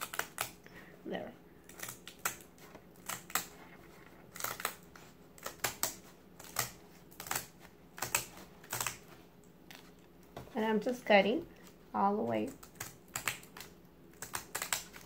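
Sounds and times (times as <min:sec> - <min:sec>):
scissors snipping mat: 0:00.0 - 0:00.6, 0:01.6 - 0:03.6, 0:04.2 - 0:10.0, 0:12.4 - 0:15.0.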